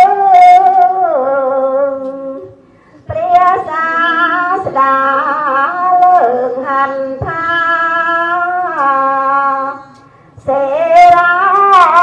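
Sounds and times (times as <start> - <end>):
person chanting: 3.1 - 12.0.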